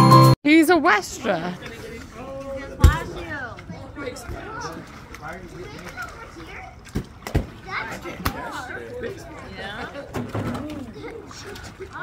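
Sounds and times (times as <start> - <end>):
people and children chattering: 0.5 - 12.0.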